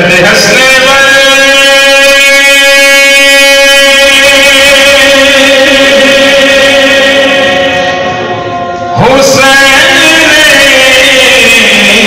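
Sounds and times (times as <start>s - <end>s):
man singing through loudspeakers: 0.0s - 12.0s.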